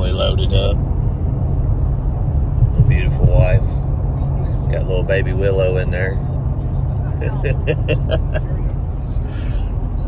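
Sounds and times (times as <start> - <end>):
road noise inside car cabin: 0.0 - 10.0
person laughing: 7.2 - 8.6.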